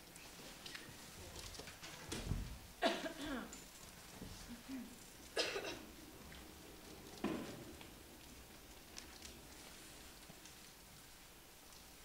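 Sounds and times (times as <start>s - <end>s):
person coughing: 2.8s - 3.5s, 5.4s - 5.9s.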